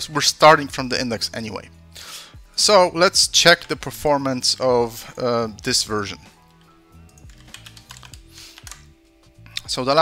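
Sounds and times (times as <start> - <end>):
quiet background music: 0.0 - 10.0
keyboard typing: 6.6 - 8.9.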